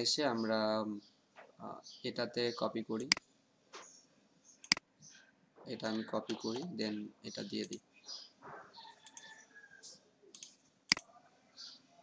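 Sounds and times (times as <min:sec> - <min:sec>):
computer mouse clicking: 0:04.6 - 0:04.8, 0:09.0 - 0:09.4, 0:10.3 - 0:11.1.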